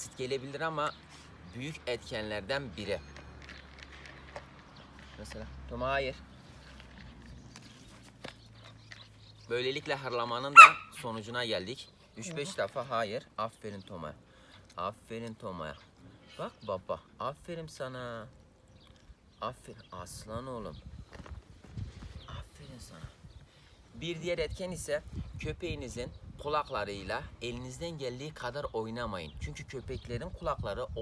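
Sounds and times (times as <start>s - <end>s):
puppy crunching dry kibble: 3.1s - 5.4s.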